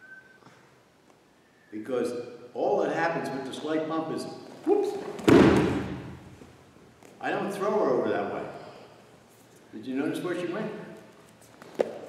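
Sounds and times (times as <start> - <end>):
body thudding on foam mat: 5.1 - 6.4.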